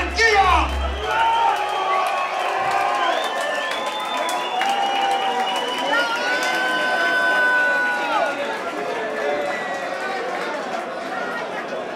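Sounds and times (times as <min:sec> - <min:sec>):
crowd talking and calling out: 0:00.0 - 0:03.0.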